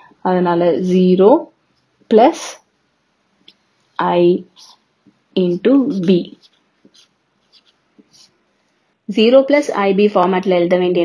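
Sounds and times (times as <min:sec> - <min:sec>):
marker pen scratching on paper: 0:03.5 - 0:08.6.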